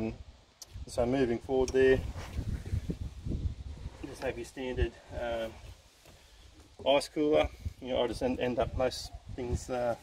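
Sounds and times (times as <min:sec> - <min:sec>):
wind on microphone: 0:00.0 - 0:05.6, 0:07.4 - 0:10.0
microphone handling noise: 0:01.6 - 0:04.5.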